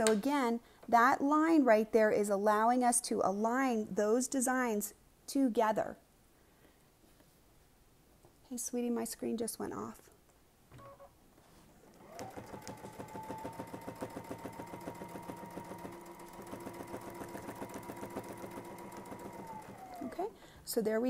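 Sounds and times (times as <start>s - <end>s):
sewing machine stitching: 11.8s - 20.4s.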